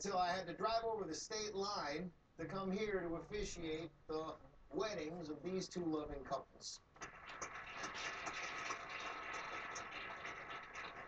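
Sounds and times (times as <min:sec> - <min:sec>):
crowd applauding: 0:07.0 - 0:11.0.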